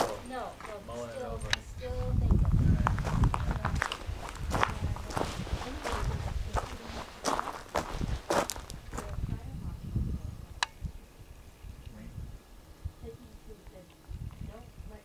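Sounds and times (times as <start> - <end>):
low rumble: 0.8 - 15.0
footsteps on dirt and wood chips: 2.3 - 9.2.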